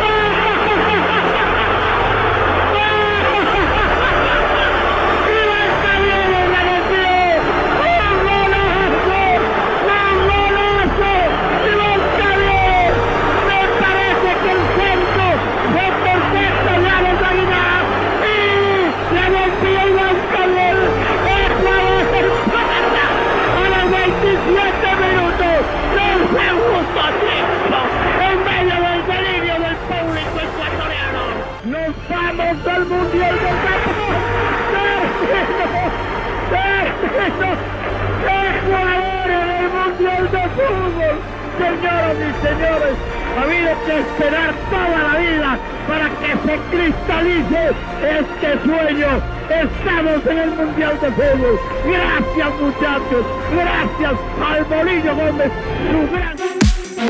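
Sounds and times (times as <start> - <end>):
music: 0.0 - 57.0.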